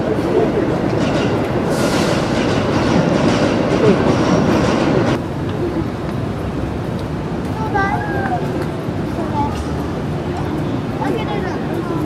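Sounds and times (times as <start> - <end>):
faint voices: 0.0 - 1.7, 7.4 - 12.0
city rumble: 0.0 - 12.0.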